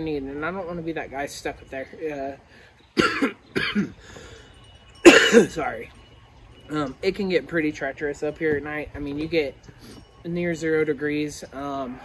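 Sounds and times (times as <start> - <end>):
man coughing: 3.0 - 4.1, 5.0 - 5.6.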